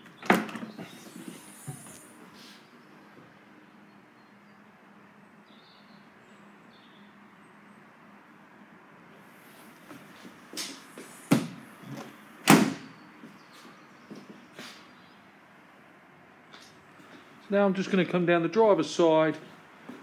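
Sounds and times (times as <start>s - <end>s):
tailgate thudding shut: 12.4s - 12.9s.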